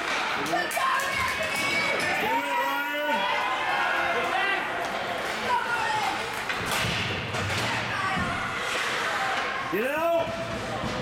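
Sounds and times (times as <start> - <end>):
thud against rink boards: 6.4 - 9.0.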